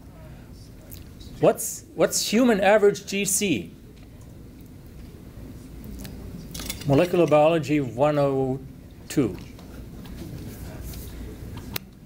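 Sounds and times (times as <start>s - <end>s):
faint murmur: 0.0s - 2.0s, 3.2s - 7.2s, 8.4s - 12.0s
low room hum: 0.0s - 12.0s.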